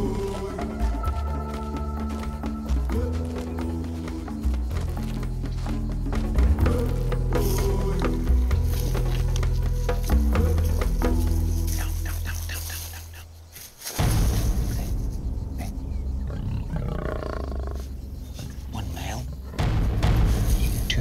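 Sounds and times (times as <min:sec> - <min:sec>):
background music with low drone: 0:00.0 - 0:21.0
lion growling: 0:15.6 - 0:19.8.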